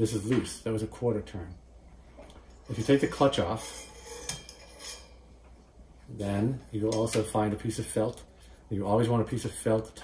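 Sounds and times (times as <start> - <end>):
metallic clicks and scrapes: 2.5 - 5.2.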